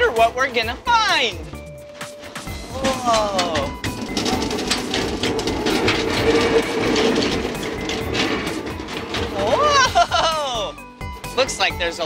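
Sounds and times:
wheels clicking on rails: 0:02.0 - 0:12.0
ride train rumbling on track: 0:02.5 - 0:11.4.

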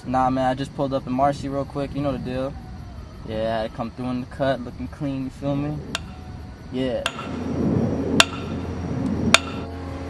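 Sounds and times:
low background rumble: 0:00.2 - 0:10.0.

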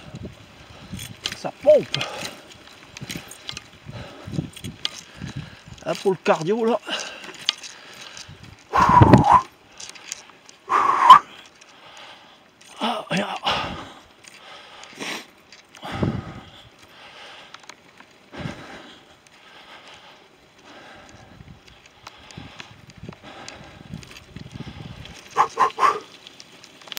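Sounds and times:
man breathing heavily and groaning: 0:00.0 - 0:06.1, 0:06.7 - 0:26.2
tyre and wind noise: 0:00.0 - 0:27.0.

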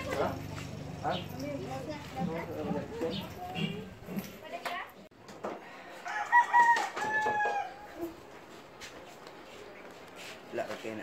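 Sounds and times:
rooster crowing: 0:05.6 - 0:08.2.

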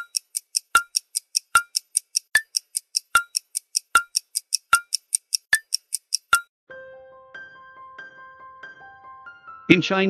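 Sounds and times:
clock-like ticking beat: 0:00.0 - 0:06.5.

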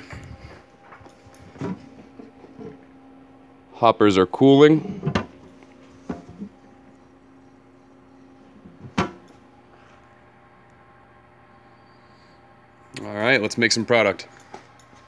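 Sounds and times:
machine humming faintly: 0:00.0 - 0:15.0.

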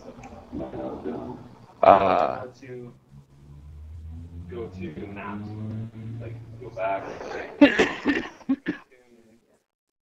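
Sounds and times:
man laughing: 0:07.0 - 0:08.8.

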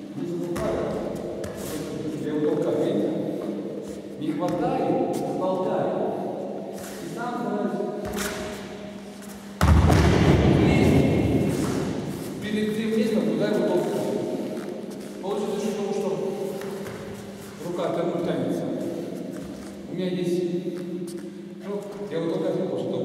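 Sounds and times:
men talking: 0:00.0 - 0:08.0, 0:10.4 - 0:16.9, 0:17.5 - 0:19.1, 0:19.7 - 0:20.8, 0:21.6 - 0:23.0
heavy thud on gym mats: 0:09.6 - 0:10.9.

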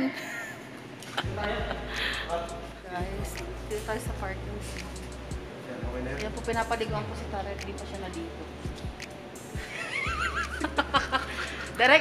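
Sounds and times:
low hum: 0:01.2 - 0:11.9.

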